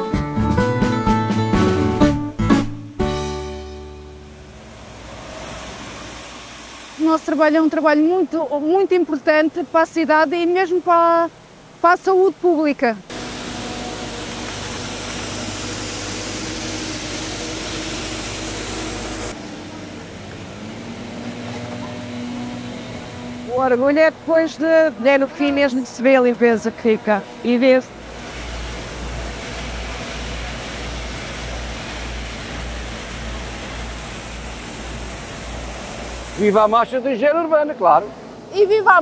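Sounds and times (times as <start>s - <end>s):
street cleaning machine engine hum: 0.4s - 39.0s
vehicle engine idling: 13.0s - 25.3s.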